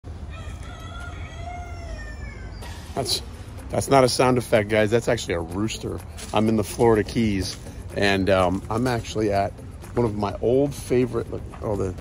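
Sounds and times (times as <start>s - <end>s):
rooster crowing: 0.1s - 2.9s.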